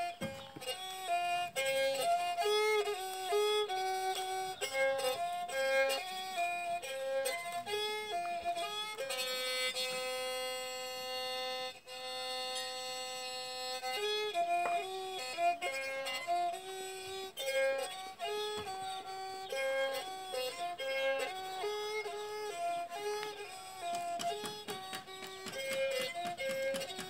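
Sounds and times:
bowed spike fiddle melody: 0.0 - 27.0.

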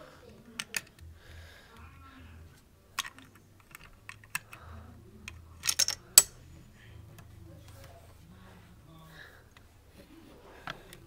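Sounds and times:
plastic bricks clicking and clacking: 0.5 - 1.0, 3.0 - 4.6, 5.3 - 6.3.

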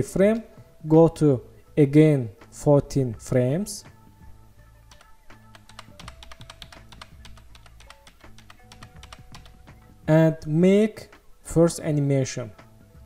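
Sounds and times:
faint background music: 0.0 - 13.0
keyboard and mouse clicking: 4.9 - 9.8.

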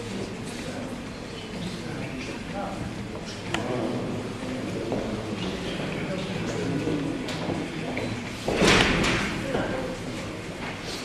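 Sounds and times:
murmur of waiting audience: 0.0 - 11.0.

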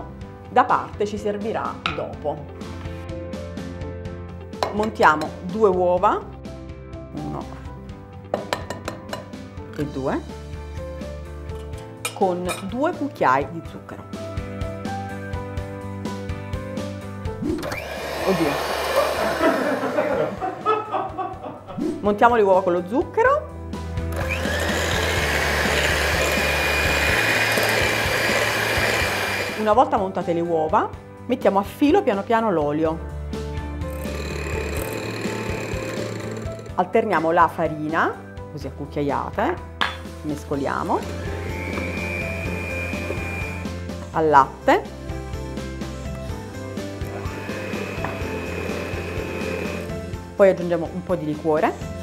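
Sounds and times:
background music: 0.0 - 52.0
electric hand mixer whipping: 17.4 - 20.5, 24.1 - 29.8, 33.9 - 36.8, 40.9 - 43.8, 47.0 - 50.1.

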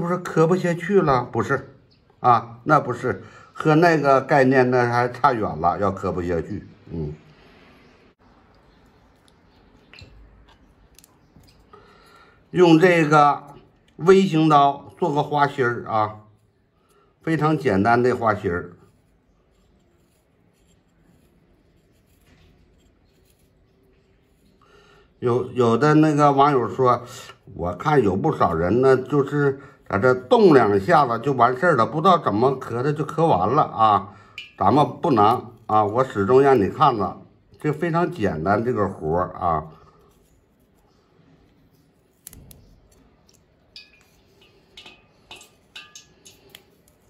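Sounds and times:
knife scratching into carrot: 18.7 - 24.6.

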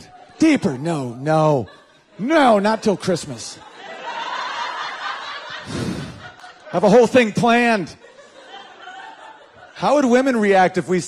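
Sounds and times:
audience laughing: 0.0 - 11.0.

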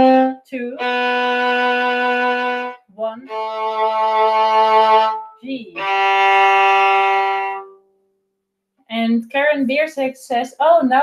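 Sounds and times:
violin long bowed low note: 0.0 - 7.8.

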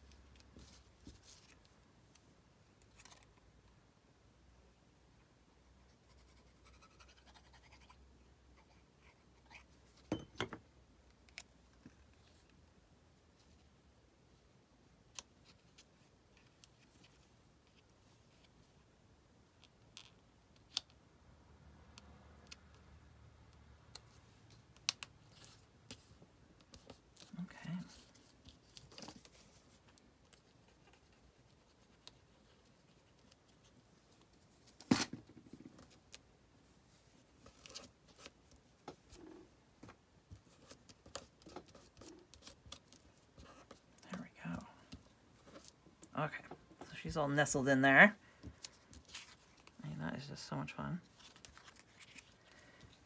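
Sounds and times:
paper rustling: 48.4 - 49.8, 51.0 - 53.0.

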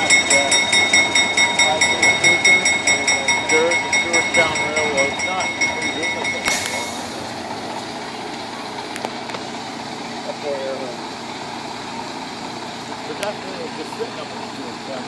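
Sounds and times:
high steady tone: 0.0 - 7.8
steam hissing: 6.4 - 7.4
loud rush of steam: 6.5 - 7.4.

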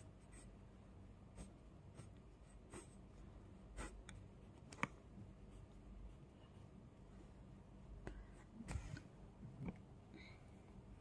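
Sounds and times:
pencil scratching on paper: 0.0 - 0.6, 1.2 - 4.7.

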